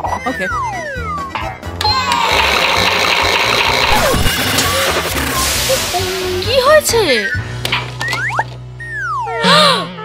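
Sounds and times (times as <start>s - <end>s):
background music: 0.0s - 10.0s
toy washing machine rattling whir: 1.8s - 5.4s.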